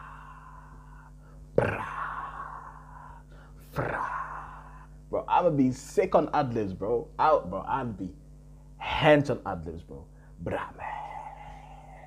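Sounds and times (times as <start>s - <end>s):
steady low hum: 0.0s - 12.0s
man whispering ad-lib: 10.4s - 12.0s.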